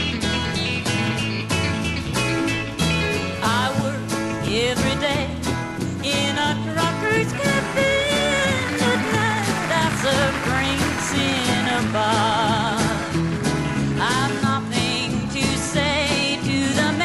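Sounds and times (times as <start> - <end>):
country-rock band playing: 0.0 - 17.0
sliding lead guitar notes: 0.0 - 17.0.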